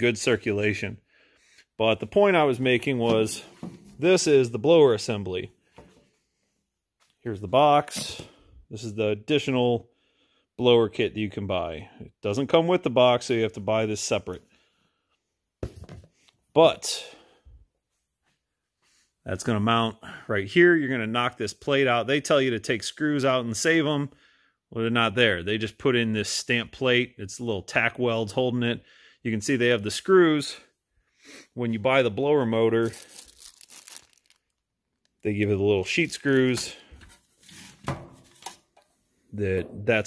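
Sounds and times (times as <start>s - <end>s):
plastic bag rustling: 32.8s - 34.6s.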